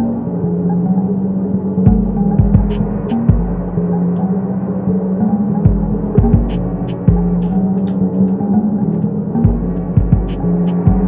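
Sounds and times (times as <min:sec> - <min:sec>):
low droning hum: 0:00.0 - 0:11.0
deep thumps dropping in pitch: 0:01.9 - 0:03.7, 0:05.7 - 0:07.6, 0:09.5 - 0:11.0.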